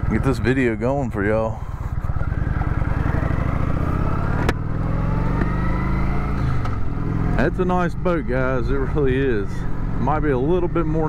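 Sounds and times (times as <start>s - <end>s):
motorcycle engine accelerating: 0.0s - 11.0s.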